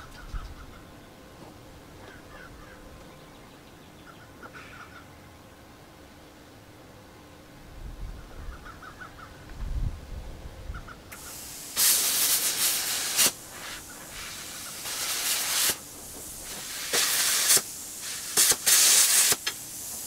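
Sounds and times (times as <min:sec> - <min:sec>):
cutting torch hissing: 0:11.1 - 0:20.0.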